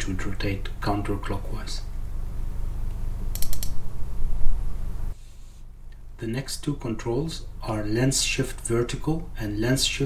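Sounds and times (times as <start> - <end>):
low electrical hum: 0.0 - 10.0
sharp computer input clicks: 3.3 - 3.8.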